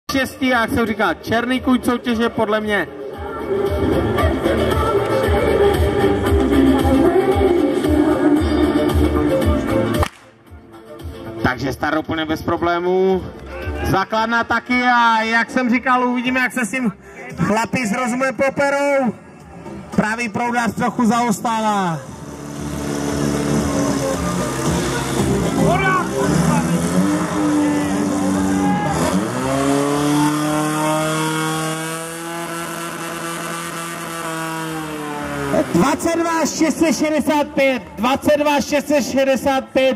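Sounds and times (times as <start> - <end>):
dance music over loudspeaker: 0.2 - 10.0, 35.5 - 39.9
pump engine running at high revs: 21.9 - 36.8.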